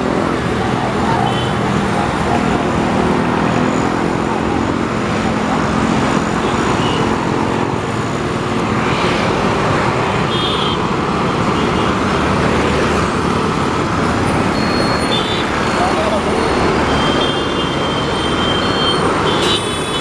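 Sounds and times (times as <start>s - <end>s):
passing cars and motorbikes: 0.0s - 20.0s.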